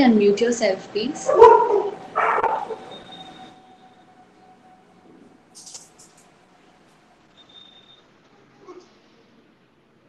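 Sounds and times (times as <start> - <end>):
faint background hum: 0.0 - 10.0
brief rustle: 5.6 - 6.3.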